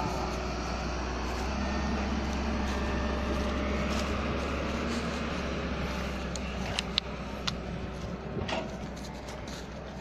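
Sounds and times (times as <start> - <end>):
distant excavator engine running: 0.0 - 10.0
outdoor din: 6.3 - 10.0.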